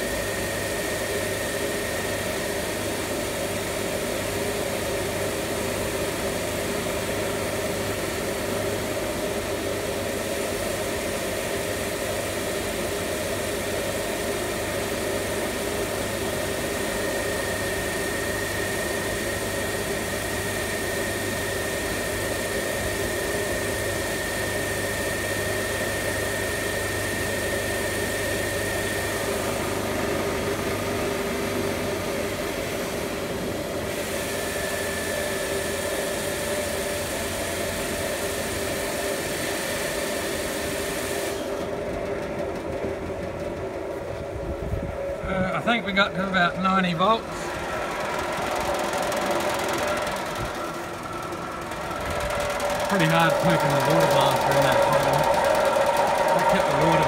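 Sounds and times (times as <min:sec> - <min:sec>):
generator high whine: 0:00.0 - 0:57.0.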